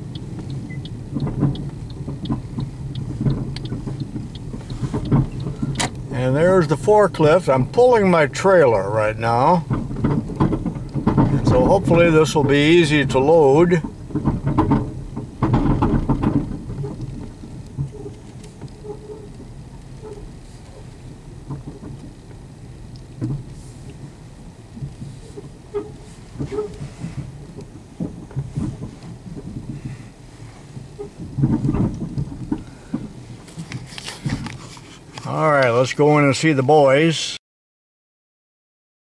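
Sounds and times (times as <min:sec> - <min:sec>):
car engine and road noise: 0:00.0 - 0:37.4.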